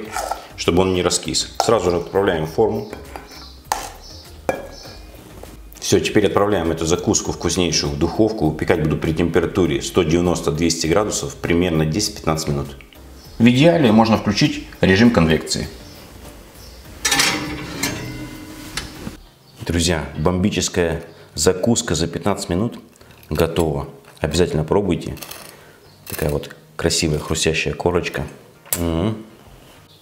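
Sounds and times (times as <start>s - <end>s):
metal spoon pushing bread: 17.0s - 19.1s
baking dish scraping on oven rack: 17.0s - 19.2s.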